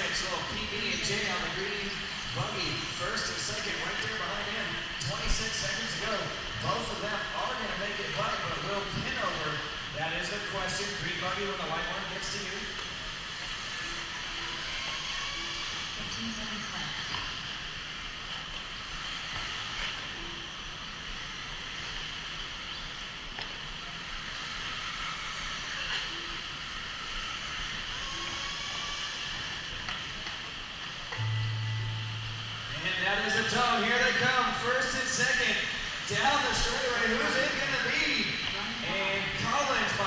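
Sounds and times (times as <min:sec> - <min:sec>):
indoor arena hall noise: 0:00.0 - 0:40.0
short low buzz: 0:31.2 - 0:34.7.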